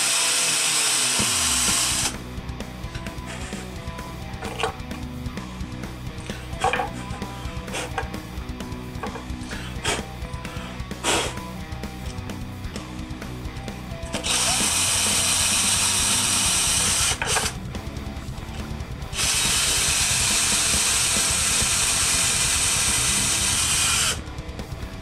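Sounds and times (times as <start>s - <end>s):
cordless drill drilling into wood: 0.0s - 2.2s, 3.0s - 3.7s, 6.2s - 8.1s, 9.0s - 11.4s, 14.1s - 17.6s, 19.2s - 24.2s
background music: 1.2s - 25.0s.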